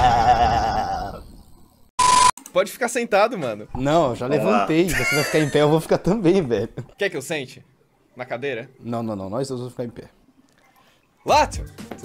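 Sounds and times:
warbling comic bleat-like cry: 0.0s - 1.4s.

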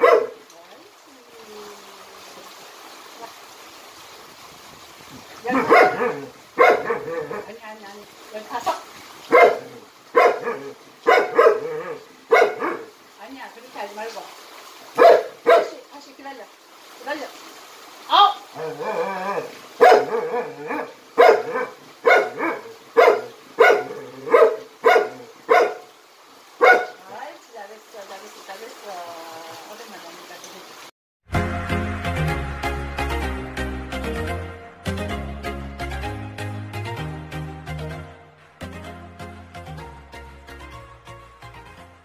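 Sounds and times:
dog barking: 0.0s - 0.4s, 5.4s - 7.5s, 9.3s - 12.9s, 15.0s - 15.8s, 18.6s - 25.9s, 26.6s - 27.0s.

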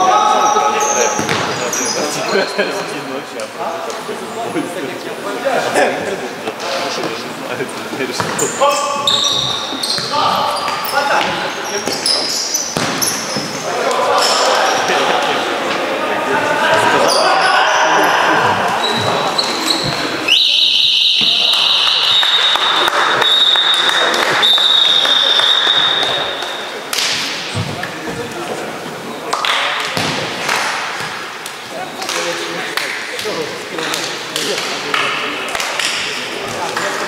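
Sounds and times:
shoe squeaks: 0.4s - 2.8s, 8.3s - 13.7s, 18.8s - 21.8s
ball kicks and bounces: 12.8s - 13.5s
players shouting: 13.0s - 26.7s
shrill referee's whistle: 20.3s - 26.4s.

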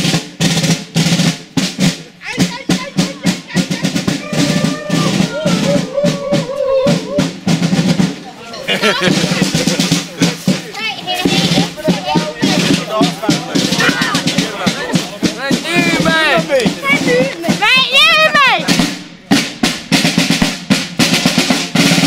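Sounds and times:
marching snare drums: 0.0s - 22.0s
voices calling and whooping: 2.3s - 7.4s, 8.3s - 19.0s.

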